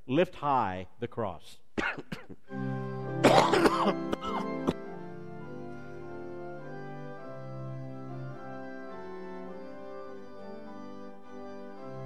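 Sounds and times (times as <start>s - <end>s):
person coughing and clearing throat: 1.8s - 2.4s, 3.2s - 4.9s
church organ chords: 2.4s - 12.0s.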